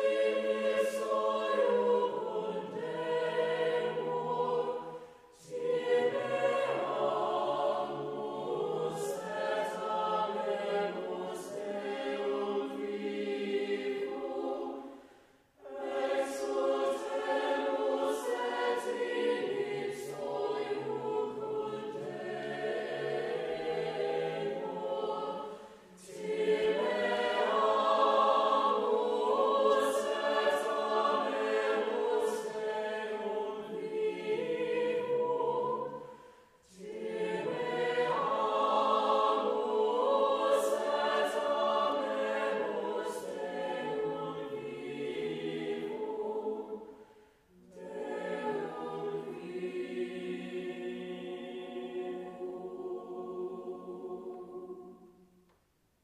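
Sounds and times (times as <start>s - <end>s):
mixed choir singing: 0.0s - 55.5s.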